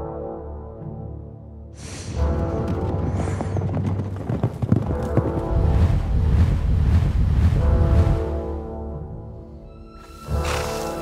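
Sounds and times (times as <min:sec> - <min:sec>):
orchestral film score: 0:00.0 - 0:11.0
horses galloping: 0:02.2 - 0:08.2
deep low rumble: 0:05.4 - 0:08.8.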